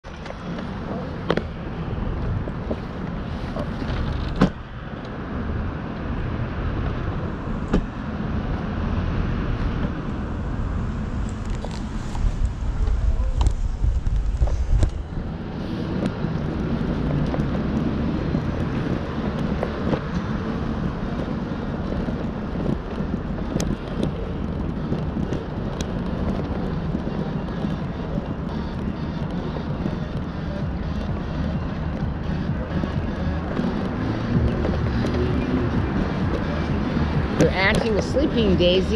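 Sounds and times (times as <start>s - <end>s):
street traffic rumble: 0.0s - 38.9s.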